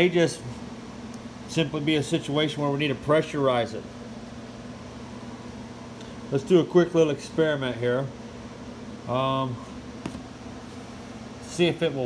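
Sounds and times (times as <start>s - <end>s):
fan or air conditioner hum: 0.0s - 12.0s.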